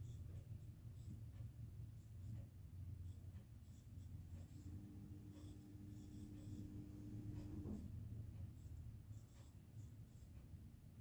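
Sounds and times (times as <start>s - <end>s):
faint steady tone: 0.0s - 11.0s
low steady hum: 0.0s - 11.0s
stylus scratching on tablet screen: 0.0s - 11.0s.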